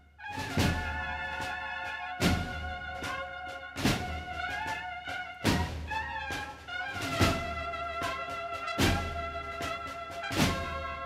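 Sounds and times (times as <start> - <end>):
brass band playing a march: 0.0 - 11.0.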